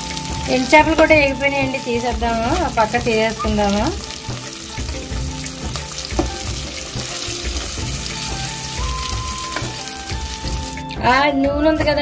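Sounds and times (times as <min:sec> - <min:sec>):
gravy bubbling and sizzling: 0:00.0 - 0:10.9
soft background music: 0:00.0 - 0:12.0.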